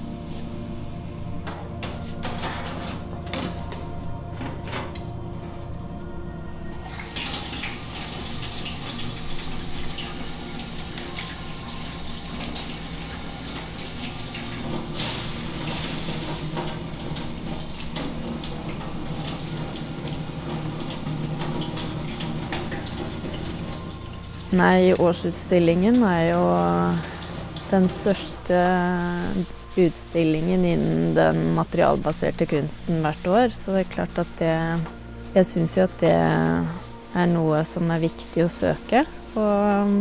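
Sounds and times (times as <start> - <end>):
water splashing on copper foil: 7.0 - 28.3.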